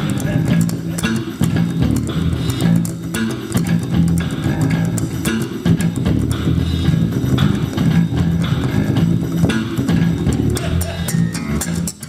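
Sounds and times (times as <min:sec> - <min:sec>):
electric bass guitars playing: 0:00.0 - 0:12.0.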